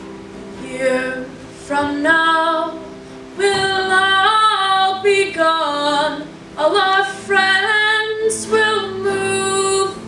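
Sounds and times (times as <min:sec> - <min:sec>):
acoustic guitar: 0:00.0 - 0:10.0
women singing together: 0:03.4 - 0:10.0.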